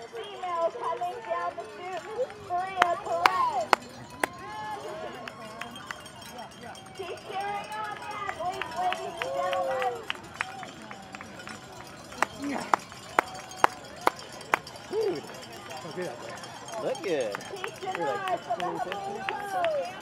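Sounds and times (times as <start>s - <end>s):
spectators talking and calling out: 0.0s - 20.0s
handclaps: 1.9s - 4.4s, 5.2s - 6.6s, 7.7s - 15.7s, 17.2s - 20.0s.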